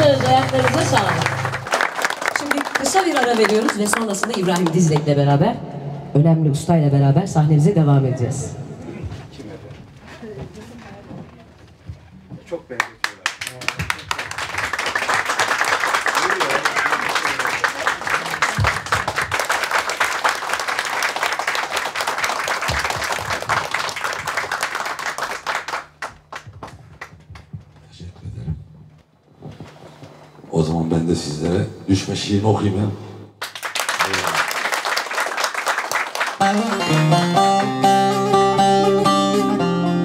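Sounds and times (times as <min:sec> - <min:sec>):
crowd clapping: 0:00.0 - 0:05.2, 0:12.7 - 0:27.5, 0:33.4 - 0:39.6.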